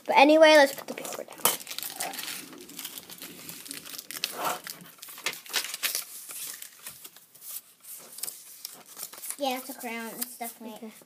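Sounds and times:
paper rustling and crinkling: 0.5 - 11.0.

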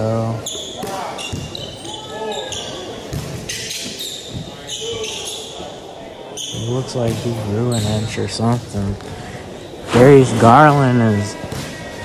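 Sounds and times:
sneakers squeaking: 0.4 - 10.5.

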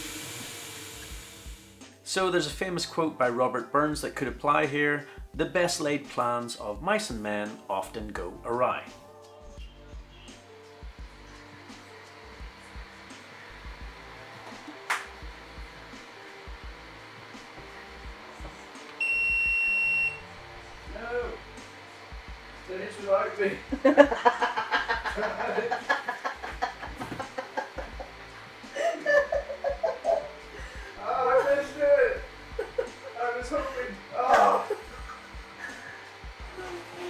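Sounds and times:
high-pitched printer beep: 19.0 - 20.2.

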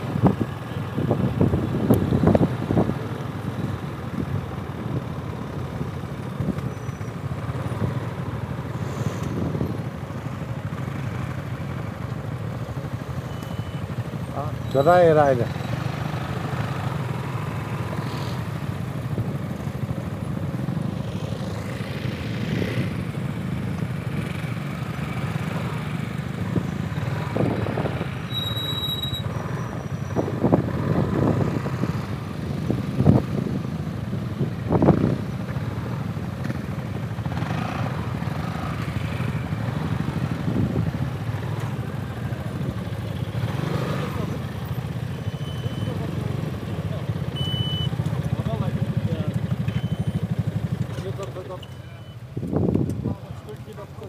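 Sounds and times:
scooter engine running and idling: 0.0 - 8.8, 9.4 - 28.3, 29.9 - 54.0.

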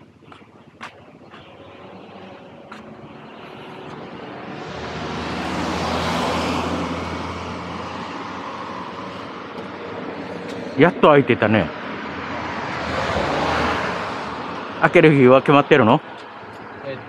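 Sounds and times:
car passing: 0.0 - 17.0.

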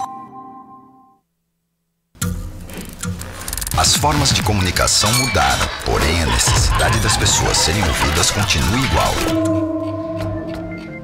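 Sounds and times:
music: 0.0 - 1.3, 5.6 - 11.0.

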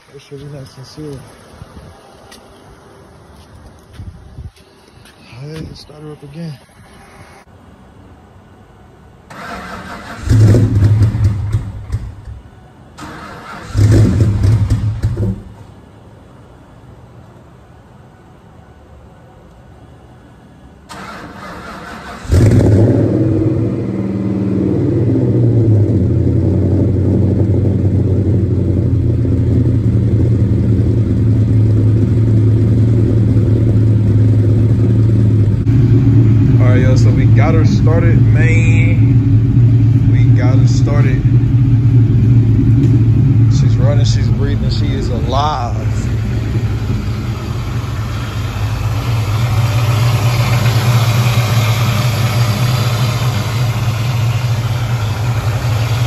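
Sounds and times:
car engine cranking and idling: 9.3 - 15.9, 20.8 - 56.0.

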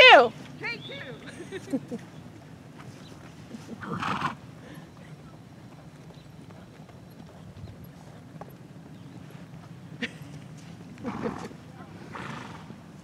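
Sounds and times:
muffled hoofbeats on sand: 0.7 - 13.0.

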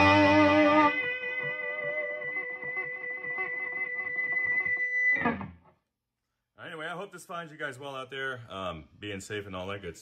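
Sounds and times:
electric guitar: 0.0 - 5.8.

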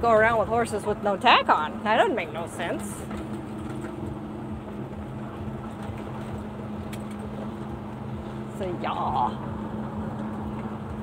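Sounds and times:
diesel truck engine droning: 0.0 - 11.0
road rumble: 0.0 - 11.0.

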